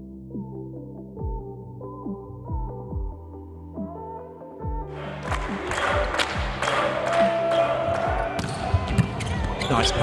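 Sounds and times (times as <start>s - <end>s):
music over public-address system: 0.2s - 10.0s
arena crowd noise: 4.9s - 10.0s.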